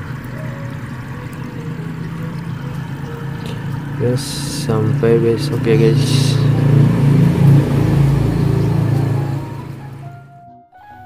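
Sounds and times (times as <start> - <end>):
aerator humming: 0.0 - 10.4.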